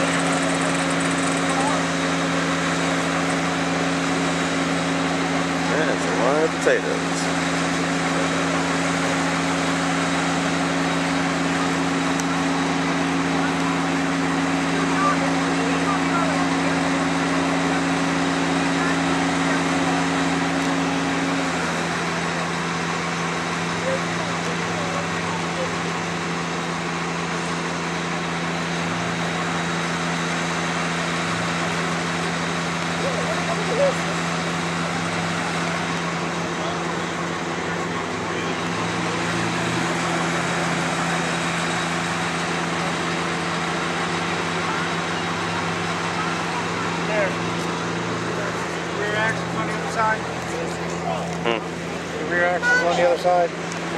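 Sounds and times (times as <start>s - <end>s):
engines idling hum: 0.0s - 53.9s.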